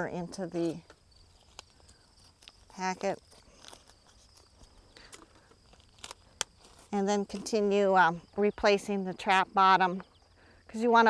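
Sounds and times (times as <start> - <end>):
crickets chirring: 0.0 - 11.0
foil wrapper being folded: 1.4 - 7.5.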